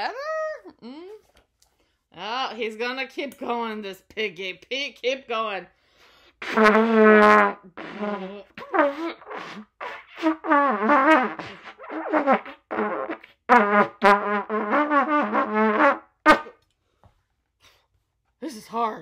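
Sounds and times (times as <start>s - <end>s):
wobbly trumpet blasts: 6.4s - 16.6s.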